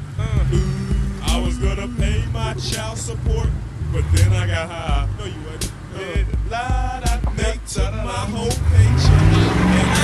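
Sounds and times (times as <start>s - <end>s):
engine revving under load: 0.0s - 10.0s.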